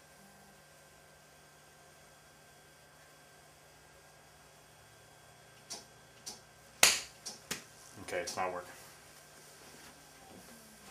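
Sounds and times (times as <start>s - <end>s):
sharp clicks: 5.6s - 7.6s.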